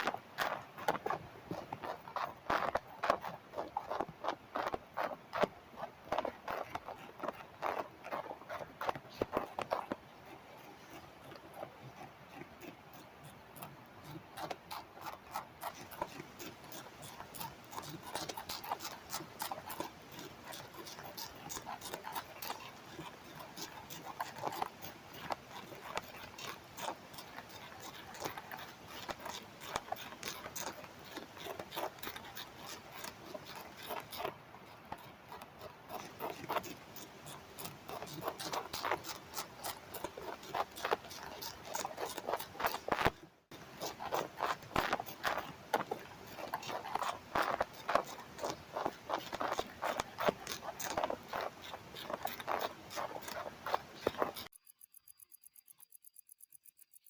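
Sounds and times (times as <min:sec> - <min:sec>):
caterpillars chewing leaf: 0:00.0 - 0:54.8.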